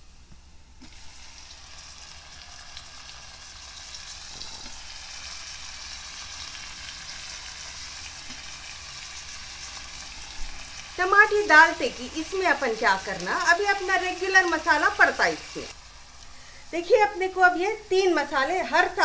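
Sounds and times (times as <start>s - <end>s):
tomatoes sizzling in hot oil: 0.8s - 19.0s.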